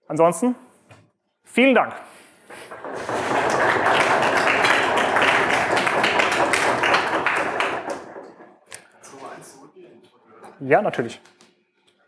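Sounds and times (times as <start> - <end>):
audience applauding: 2.5 - 8.8.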